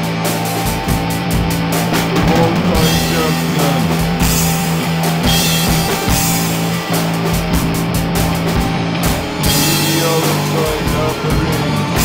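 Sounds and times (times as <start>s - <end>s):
rock music with drum kit: 0.0s - 12.0s.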